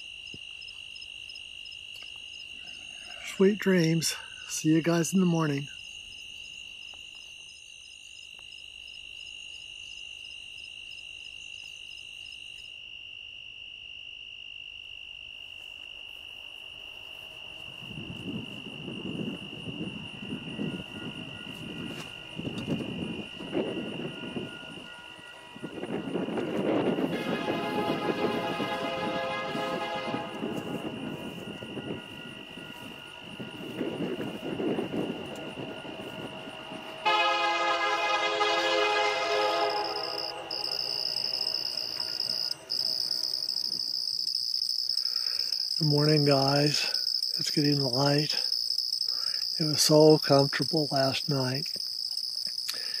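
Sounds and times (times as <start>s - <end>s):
crickets chirping: 0.0s - 53.0s
freight train rumbling: 17.8s - 44.0s
train horn blast: 23.8s - 33.5s, 35.7s - 43.5s.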